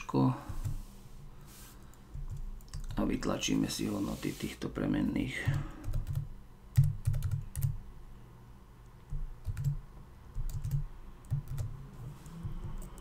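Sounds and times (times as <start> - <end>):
computer keyboard typing: 1.9 - 3.1, 5.4 - 7.8, 9.1 - 13.0.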